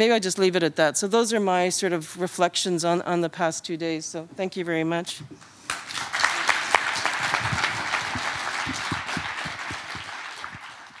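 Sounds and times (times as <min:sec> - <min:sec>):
audience applauding: 0:05.7 - 0:11.0.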